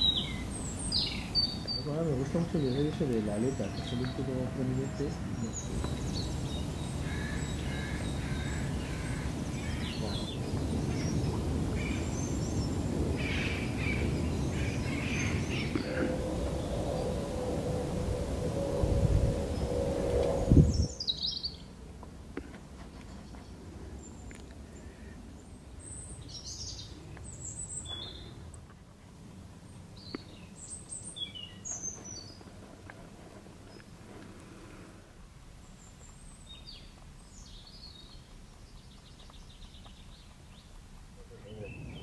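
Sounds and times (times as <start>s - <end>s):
birds chirping: 0.0s - 21.8s, 22.7s - 28.6s, 29.6s - 32.6s, 35.6s - 42.0s.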